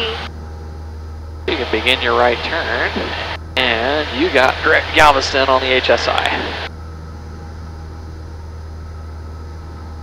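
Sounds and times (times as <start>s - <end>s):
propeller plane engine drone: 0.0s - 10.0s.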